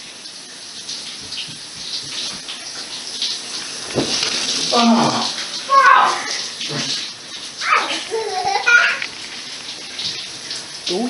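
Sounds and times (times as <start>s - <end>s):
shower spray hissing: 0.0s - 11.0s
person crying out: 4.7s - 6.2s.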